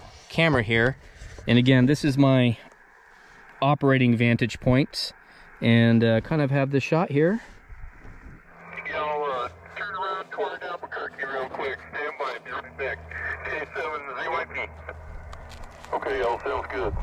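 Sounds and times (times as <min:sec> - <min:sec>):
low hum: 0:00.0 - 0:17.0
person speaking over radio: 0:08.6 - 0:15.2, 0:15.8 - 0:17.0.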